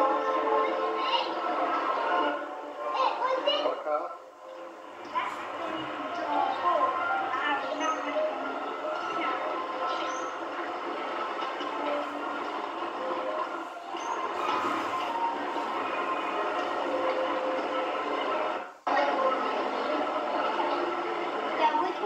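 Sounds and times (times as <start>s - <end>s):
outdoor background noise: 0.0s - 22.0s.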